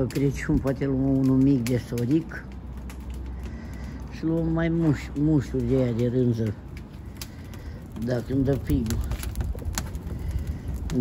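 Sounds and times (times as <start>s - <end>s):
low rumble: 0.0s - 11.0s
wood fire crackling: 0.0s - 11.0s.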